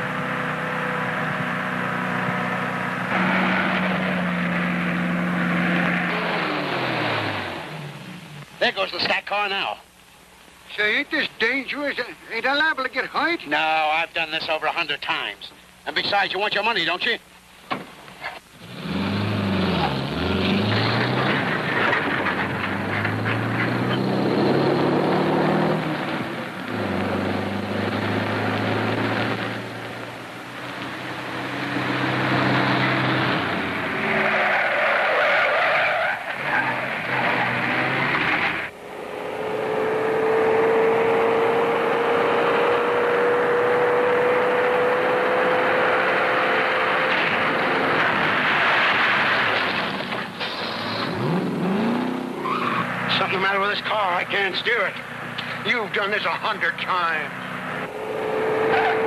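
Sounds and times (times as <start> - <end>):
car engine revving: 0.0 - 8.4, 18.6 - 54.4, 56.5 - 59.0
tyres skidding: 0.0 - 9.1, 17.7 - 59.0.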